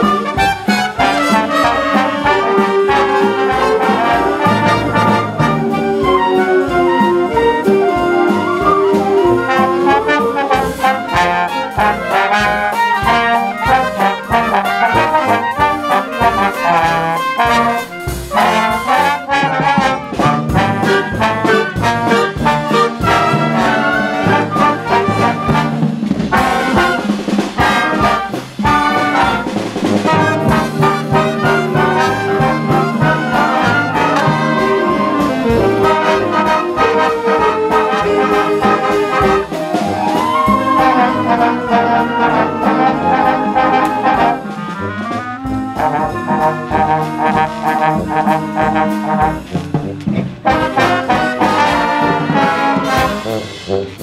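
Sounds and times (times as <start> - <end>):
concert band playing: 0.0 - 54.0.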